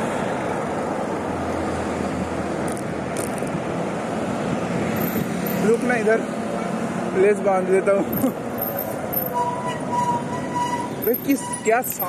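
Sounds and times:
passing vehicle engine hum: 0.0s - 12.0s
road traffic noise: 0.0s - 12.0s
wind: 0.0s - 12.0s.

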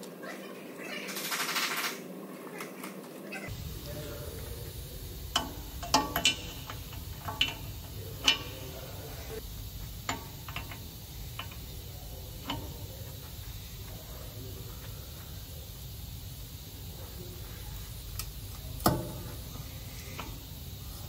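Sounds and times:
metal tools clinking: 3.5s - 9.4s
steady low hum: 3.5s - 21.0s.

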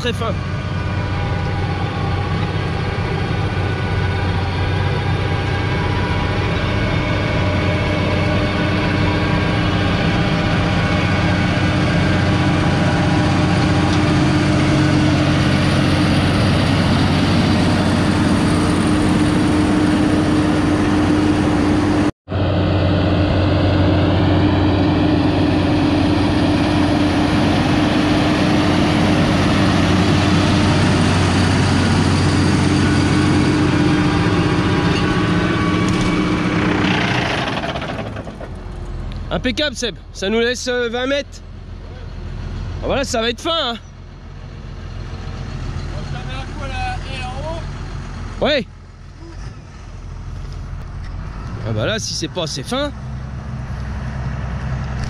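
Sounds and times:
tractor engine running under load: 0.0s - 55.0s.

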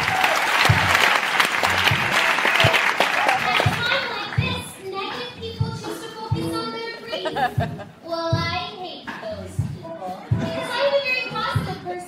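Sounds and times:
band playing: 0.0s - 8.7s, 9.5s - 11.9s
low drum beat: 0.7s - 1.0s, 1.7s - 2.8s, 3.4s - 4.8s, 5.4s - 8.6s, 11.4s - 11.9s.

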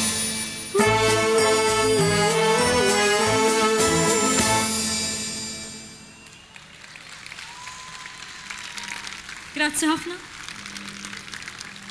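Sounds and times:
audience applauding: 6.2s - 11.9s.

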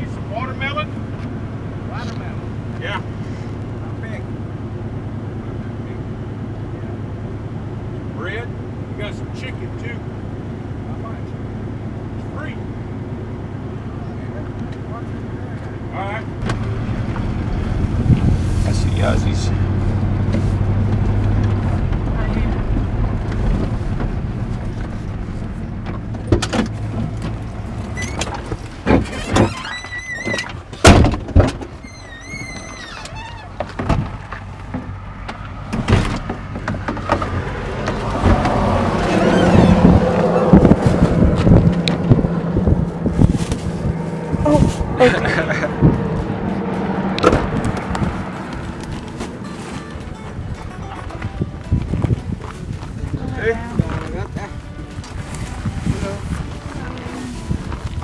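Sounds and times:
pickup truck engine running: 0.0s - 58.0s
engine knocks: 16.3s - 55.8s.

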